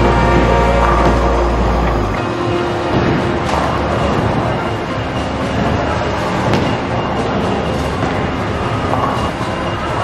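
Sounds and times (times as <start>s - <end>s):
bowling balls rolling: 0.0s - 4.7s.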